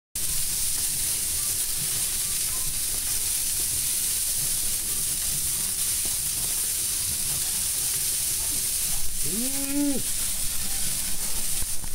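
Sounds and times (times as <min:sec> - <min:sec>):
pork sizzling in a smoker: 0:00.2 - 0:11.9.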